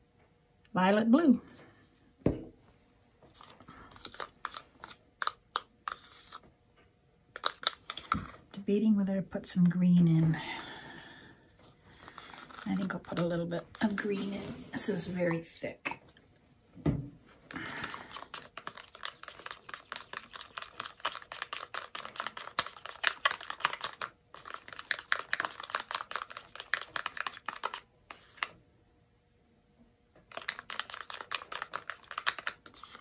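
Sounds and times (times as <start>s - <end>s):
stick scraping inside plastic cup: 3.4s - 6.4s, 7.4s - 8.3s, 11.6s - 14.4s, 30.3s - 33.0s.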